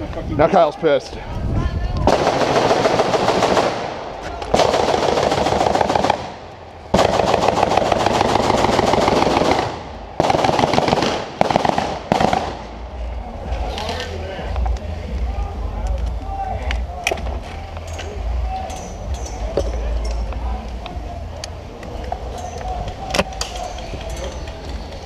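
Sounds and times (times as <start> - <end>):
airsoft rifles firing bursts: 2.1 - 12.7.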